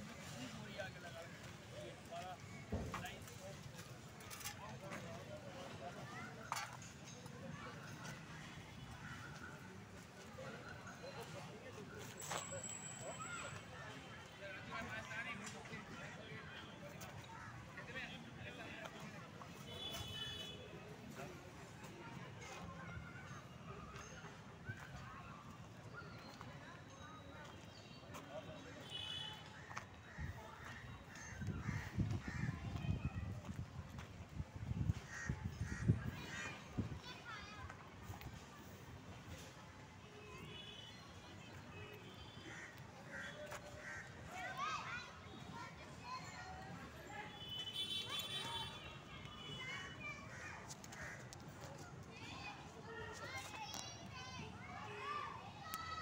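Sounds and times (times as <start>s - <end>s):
distant children calling and shouting: 21.2s - 56.0s.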